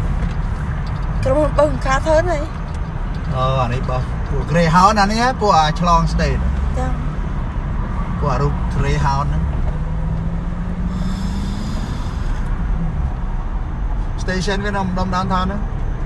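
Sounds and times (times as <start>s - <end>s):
car engine and road noise: 0.0s - 16.0s
voices talking: 3.2s - 7.1s
steady low hum: 10.4s - 13.2s.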